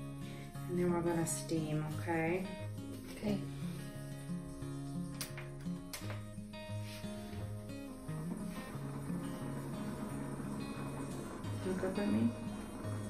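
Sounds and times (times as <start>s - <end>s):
music with slow held notes: 0.0s - 13.0s.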